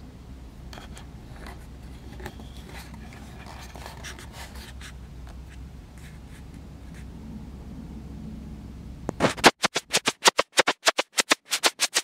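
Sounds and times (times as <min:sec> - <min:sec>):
steady low hum: 0:00.0 - 0:12.0
fingers rubbing and tapping camera: 0:09.1 - 0:12.0.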